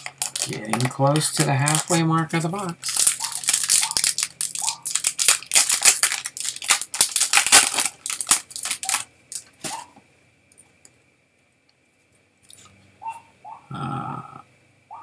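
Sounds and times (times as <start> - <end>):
wrapper crinkling and tearing: 0.0 - 9.8
cards rustling: 0.0 - 9.9.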